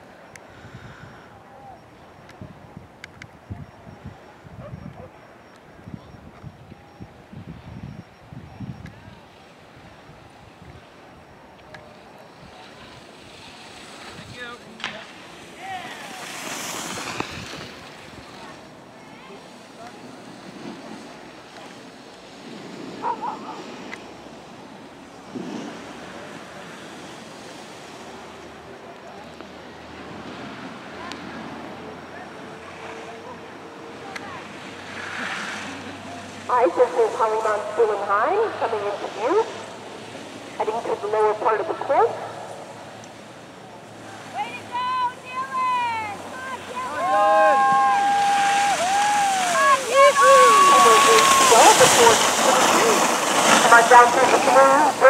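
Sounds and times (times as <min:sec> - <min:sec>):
wind on microphone: 0:02.3 - 0:10.9
skis scraping over snow: 0:11.9 - 0:24.5, 0:25.2 - 0:28.2, 0:34.0 - 0:39.6, 0:46.3 - 0:55.0
people shouting encouragement: 0:44.2 - 0:52.8.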